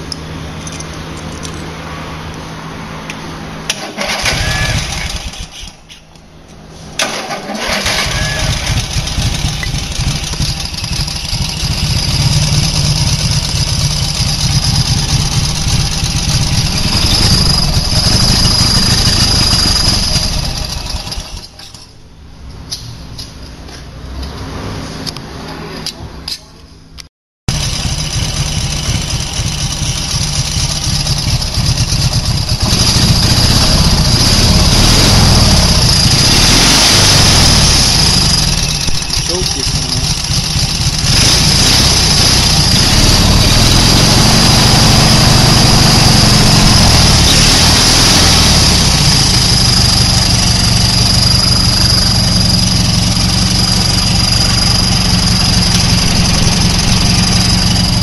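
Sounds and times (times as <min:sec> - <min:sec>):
twin-cylinder engine running: 0:00.0 - 0:05.7, 0:07.0 - 0:21.7, 0:27.5 - 0:58.0.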